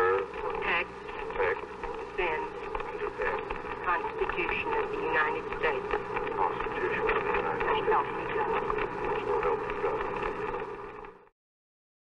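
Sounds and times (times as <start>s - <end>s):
voices reciting an oath: 0.0s - 11.0s.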